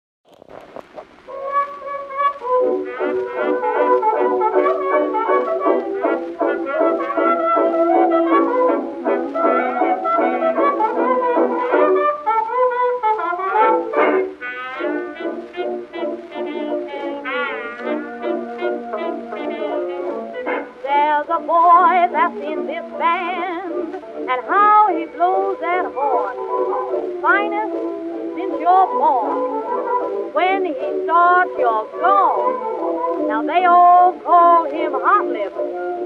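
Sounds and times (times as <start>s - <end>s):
early jazz dance band: 0.2s - 36.0s.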